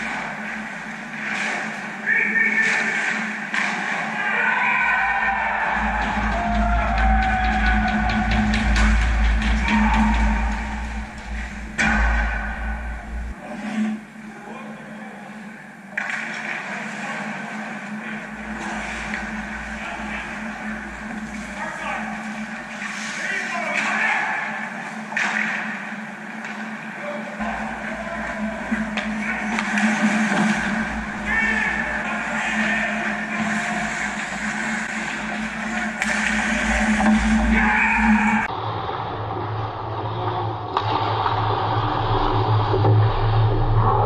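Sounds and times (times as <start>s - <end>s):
skates and sticks on ice: 0.0s - 13.9s, 27.4s - 38.3s
steady hum: 0.0s - 44.0s
distant players' voices: 1.8s - 15.6s, 16.3s - 24.8s, 25.4s - 38.5s.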